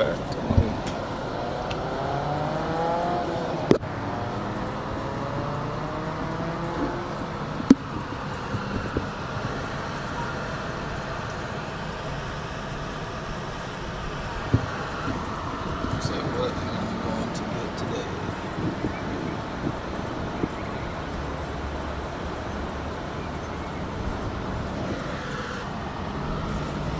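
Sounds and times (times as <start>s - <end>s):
car engine and road noise: 0.0s - 26.9s.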